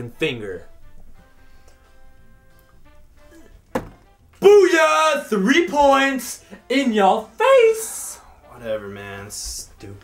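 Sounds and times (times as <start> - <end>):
quiet background music: 0.0 - 10.0
dart striking dartboard: 3.7 - 4.1.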